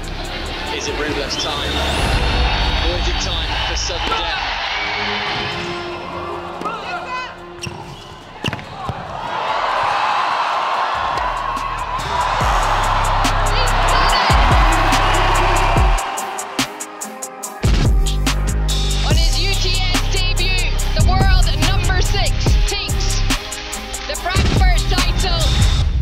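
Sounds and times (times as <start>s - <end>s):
crowd cheering: 0.0s - 20.1s
music with deep bass: 11.3s - 26.0s.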